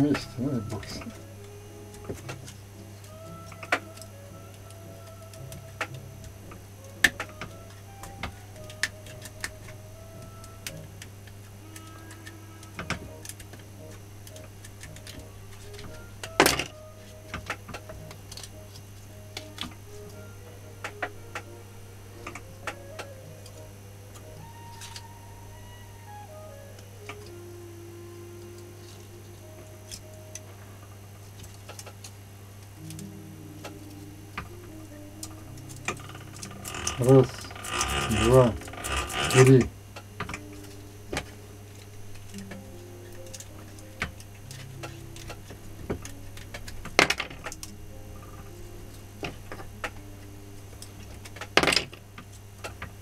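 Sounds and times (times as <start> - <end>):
steady low hum: 0.0 - 53.0
wire clicking and rubbing: 7.0 - 20.2, 32.8 - 50.1.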